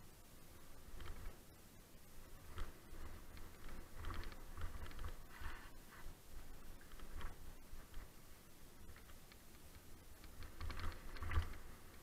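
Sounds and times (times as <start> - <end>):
bike rattling over rough trail: 2.4 - 5.7, 6.5 - 8.2, 10.2 - 12.0.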